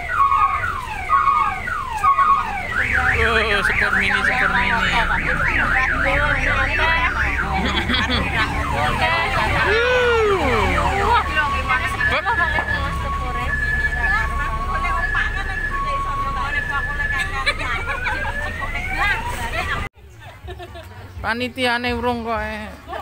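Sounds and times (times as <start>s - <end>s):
two-tone high-low siren: 0.0s - 19.8s
rising siren wail: 0.0s - 19.9s
warbling electronic sirens: 0.0s - 19.9s.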